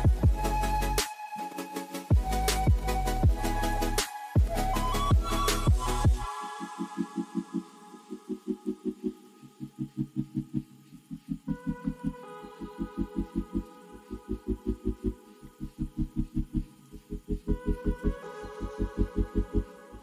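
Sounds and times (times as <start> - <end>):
pulsing bass beat: 0.0 - 1.0, 2.1 - 6.3, 14.4 - 18.2.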